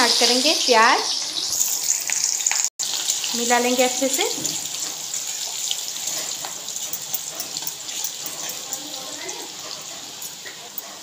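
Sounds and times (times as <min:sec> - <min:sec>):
onions sizzling in oil: 0:00.0 - 0:11.0.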